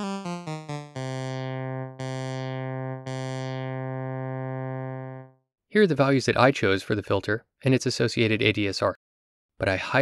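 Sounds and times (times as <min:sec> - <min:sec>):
synth lead notes with filter sweep: 0:00.0 - 0:05.3.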